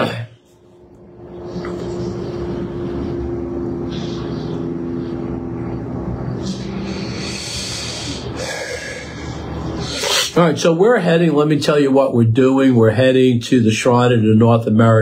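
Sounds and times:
held hum tones: 0.0 - 11.6
low mechanical drone: 0.0 - 15.0.

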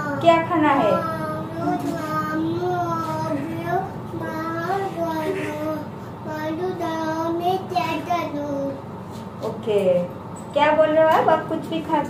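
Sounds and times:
child singing wordless tune: 1.0 - 8.8.

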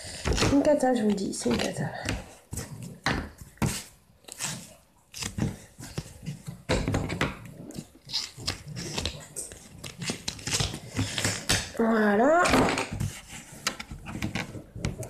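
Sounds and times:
paper rustling: 0.0 - 11.6.

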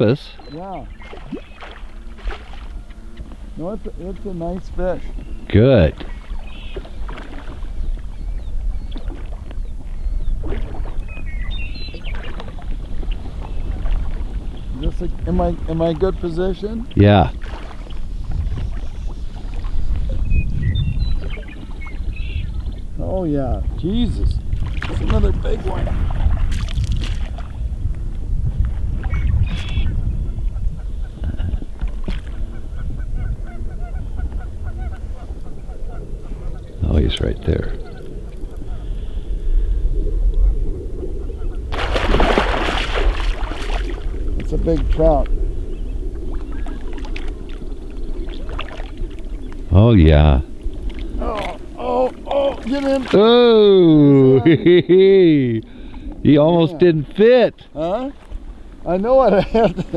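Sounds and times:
water and wind rumbling: 0.0 - 59.9
small splashes: 0.9 - 2.9, 5.9 - 7.7, 17.3 - 20.1, 24.6 - 27.6, 41.7 - 45.0, 46.3 - 49.6, 50.7 - 53.6.

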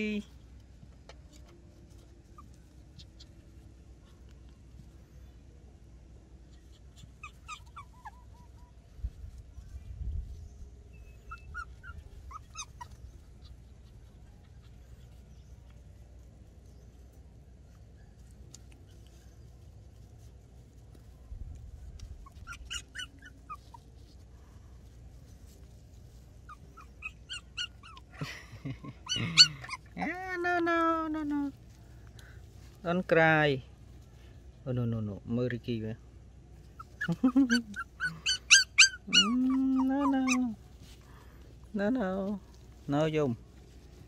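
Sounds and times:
puppy whimpering: 2.2 - 3.4, 6.5 - 8.7, 11.0 - 15.0, 22.1 - 24.0, 26.4 - 28.2, 29.0 - 31.5, 36.7 - 40.8.

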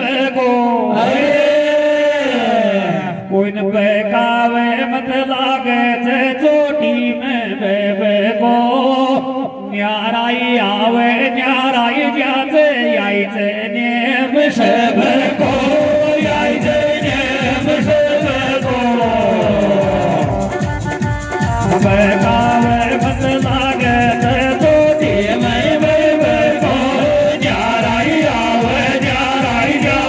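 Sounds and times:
men singing folk song through pa: 0.0 - 30.0
low drum beats: 14.9 - 30.0.

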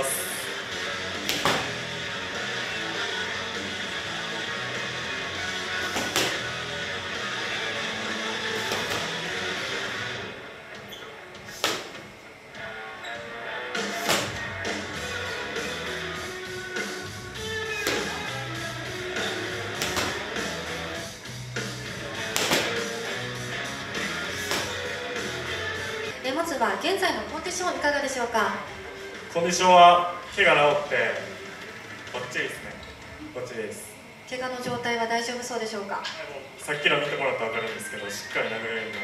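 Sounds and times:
background music: 0.0 - 33.4
punches smacking focus mitts: 1.2 - 1.8, 5.8 - 6.5, 8.5 - 9.4, 11.5 - 12.0, 14.0 - 14.5, 17.8 - 18.4, 19.6 - 20.6, 22.1 - 23.1, 24.0 - 24.9
guitar music: 12.7 - 26.3.

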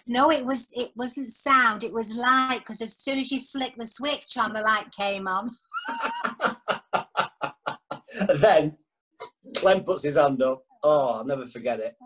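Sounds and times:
person laughing heartily: 5.7 - 8.4.

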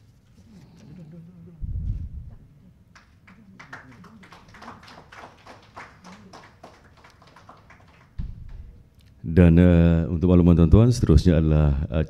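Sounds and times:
sparse applause: 3.0 - 8.8
low thump: 8.2 - 8.8.

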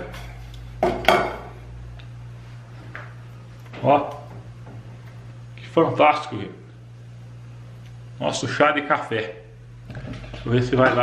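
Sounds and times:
mug clanking on metal counter: 0.8 - 1.5.

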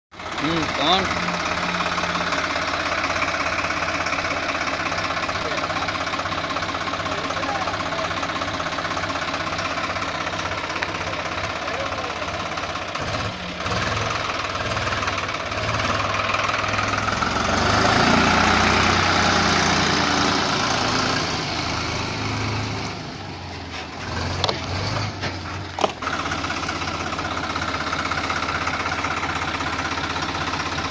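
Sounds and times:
tractor diesel engine running: 0.1 - 30.9.

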